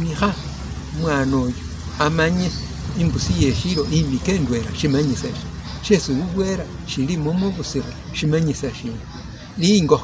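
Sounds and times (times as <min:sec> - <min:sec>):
man speaking: 0:00.0 - 0:09.0.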